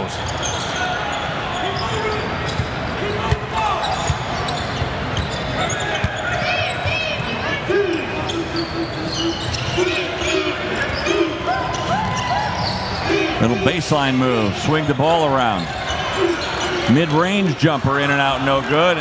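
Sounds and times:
sneaker squeaks: 0.0 - 17.6
arena crowd noise: 0.0 - 19.0.

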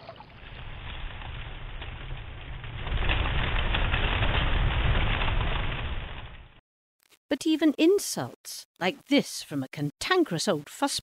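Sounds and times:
fire crackling: 0.1 - 6.6
deep rumble: 0.3 - 6.6.

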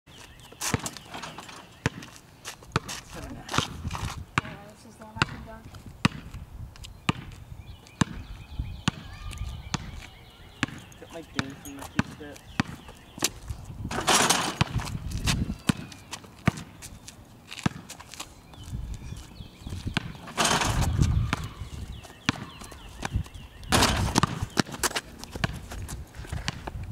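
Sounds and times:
sneaker footsteps: 0.1 - 8.3, 9.7 - 26.9
basketball bouncing on pavement: 0.4 - 26.9.

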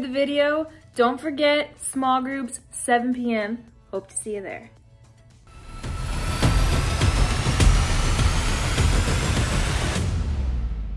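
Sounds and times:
high tones gliding upward: 5.5 - 10.0
low rumble: 5.5 - 10.9
dense noisy roar: 5.6 - 10.3.

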